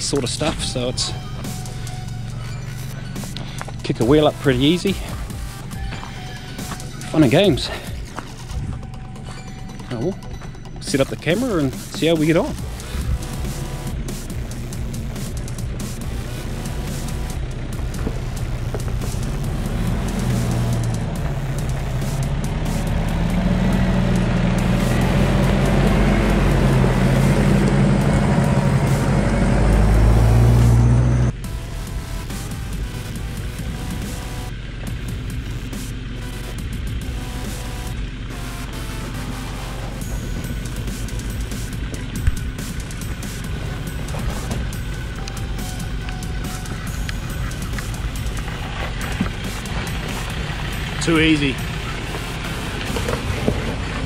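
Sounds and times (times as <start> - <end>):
background music: 0.0 - 54.0
steady engine sound: 0.0 - 54.0
vehicle engine revving: 0.0 - 54.0.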